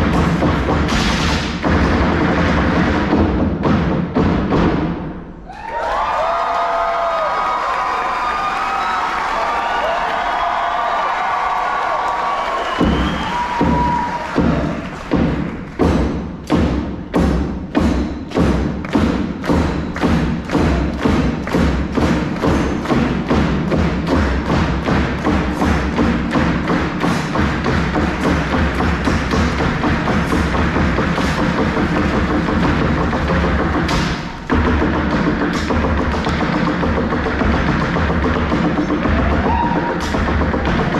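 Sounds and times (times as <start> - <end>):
heavy drum strikes: 0.0 - 5.4, 12.8 - 40.9.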